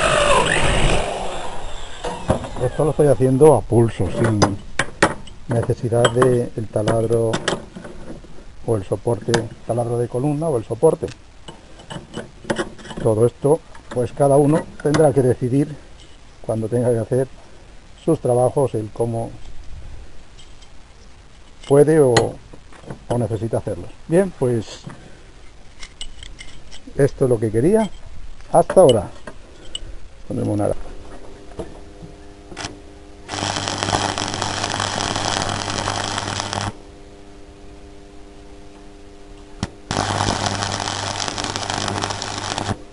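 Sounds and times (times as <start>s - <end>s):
arc welding crackling hiss: 0.0s - 25.8s, 32.5s - 36.9s, 39.4s - 42.9s.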